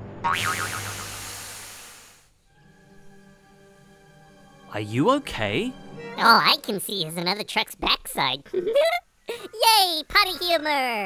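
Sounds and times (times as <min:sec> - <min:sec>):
steam engine hissing: 0:00.9 - 0:02.4
soft sustained music: 0:02.4 - 0:06.2.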